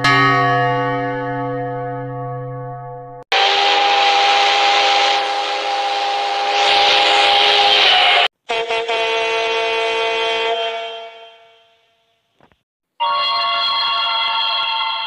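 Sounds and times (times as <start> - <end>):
steam locomotive chime whistle: 3.3 - 12.0, 13.0 - 15.0
diesel locomotive air horn: 3.3 - 12.3
steam hissing: 3.4 - 8.3.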